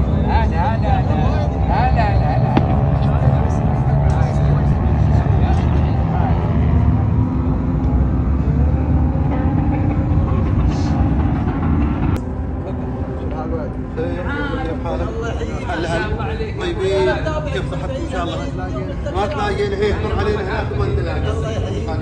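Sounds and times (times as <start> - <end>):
faint music: 0.0 - 22.0
steady low rumble: 0.0 - 22.0
voices: 0.0 - 22.0.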